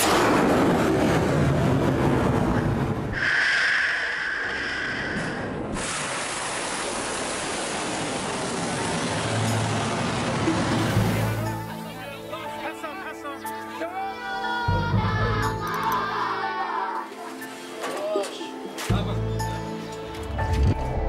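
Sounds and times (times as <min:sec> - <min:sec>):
missile launch roar: 0:00.0 - 0:11.6.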